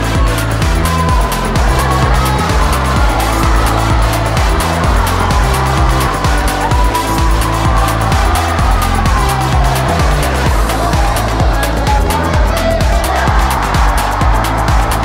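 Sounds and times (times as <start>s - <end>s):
music with steady beat: 0.0s - 15.0s.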